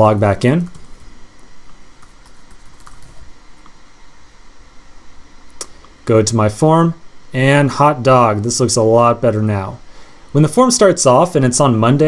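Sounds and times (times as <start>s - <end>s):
computer keyboard typing: 0.6s - 3.7s.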